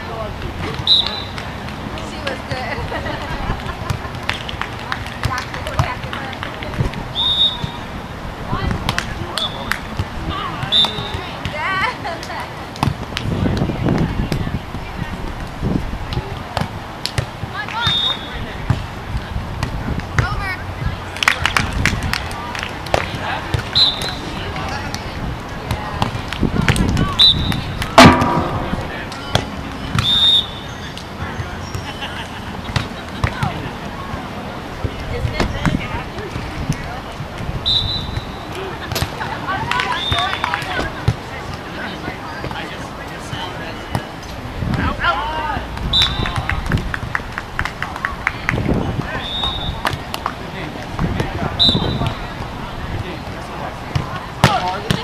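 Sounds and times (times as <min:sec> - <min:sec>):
players shouting and chatting: 0:00.0 - 0:55.0
volleyballs struck by hands: 0:03.6 - 0:07.0, 0:08.6 - 0:14.5, 0:16.1 - 0:30.2, 0:32.6 - 0:33.7, 0:34.8 - 0:37.5, 0:38.1 - 0:41.7, 0:45.7 - 0:52.5, 0:53.8 - 0:55.0.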